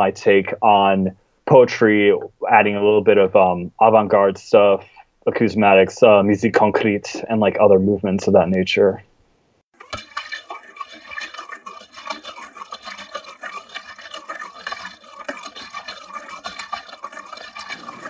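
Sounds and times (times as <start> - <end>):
small clicks and scratchy clattering: 9.8 - 18.0.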